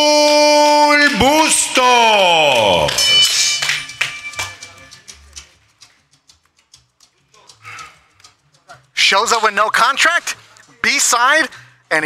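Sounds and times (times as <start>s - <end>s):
sharp claps and taps: 2.6s - 8.9s.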